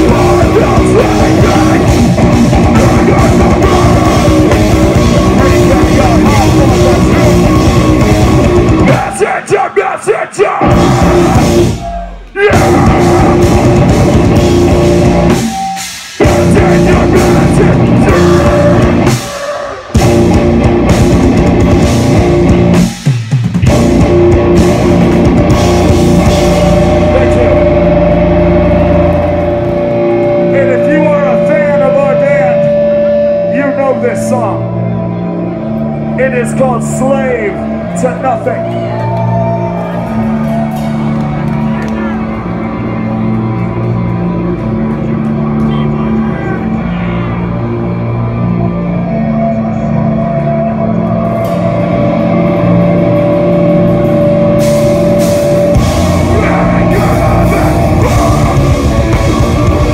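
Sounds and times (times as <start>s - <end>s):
low bass: 0.0s - 9.0s, 10.6s - 59.9s
electric guitars ringing: 0.0s - 9.5s, 10.6s - 59.9s
metalcore band playing: 0.0s - 59.9s
people shouting: 8.8s - 13.9s, 16.5s - 20.4s, 55.4s - 59.9s.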